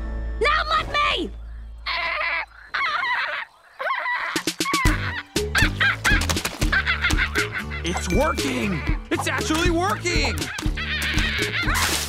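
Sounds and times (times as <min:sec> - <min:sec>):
music with bass and percussion: 0:04.9 - 0:11.9.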